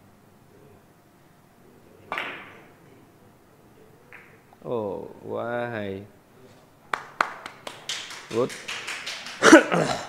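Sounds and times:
man clapping hands: 6.9s - 10.0s.

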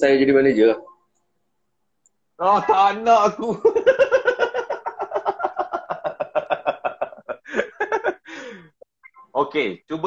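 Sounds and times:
man laughing: 2.5s - 8.3s.

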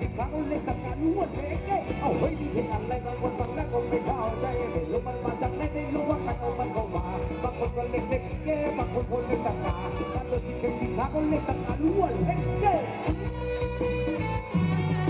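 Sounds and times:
live band playing dance music: 0.0s - 15.0s.

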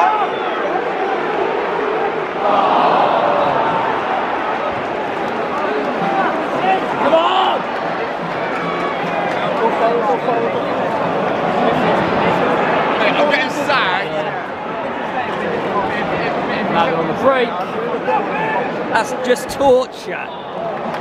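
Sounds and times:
football crowd talking and shouting: 0.0s - 21.0s.

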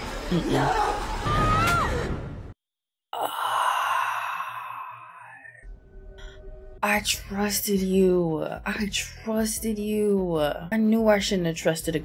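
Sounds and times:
long breathy sigh: 3.1s - 5.6s.

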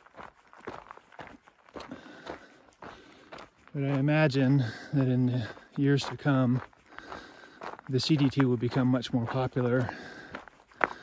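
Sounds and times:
footsteps on rocky dirt trail: 0.0s - 11.0s.

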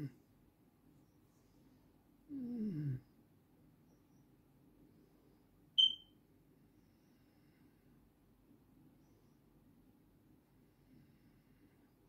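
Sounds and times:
faint low room hum: 0.0s - 12.0s
high-pitched electronic beep: 5.8s - 6.0s.

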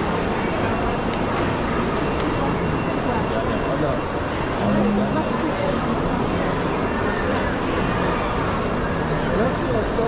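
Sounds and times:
crowd voices: 0.0s - 10.0s.

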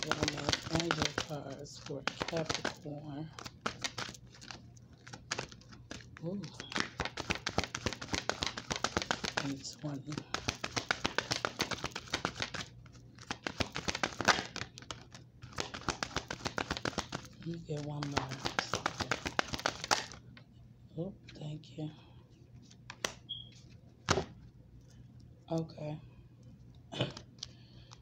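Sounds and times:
cards being shuffled: 0.0s - 20.3s, 22.6s - 24.5s.

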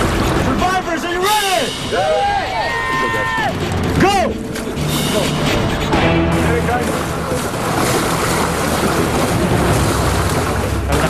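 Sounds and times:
sea water splashing: 0.0s - 11.0s.

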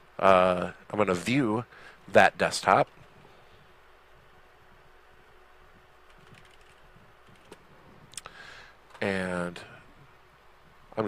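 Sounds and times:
faint steady hum: 0.0s - 11.0s
computer keyboard keystrokes: 6.1s - 7.6s.

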